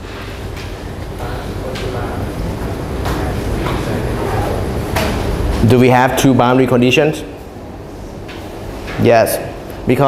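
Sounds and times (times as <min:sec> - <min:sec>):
man speaking: 0:01.2 - 0:04.8, 0:05.6 - 0:07.4, 0:09.0 - 0:10.0.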